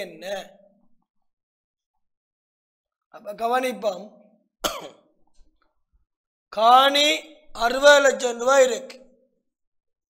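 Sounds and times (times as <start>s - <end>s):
man speaking: 0.0s - 0.6s, 3.2s - 4.2s, 6.6s - 9.0s
man coughing: 4.6s - 5.1s.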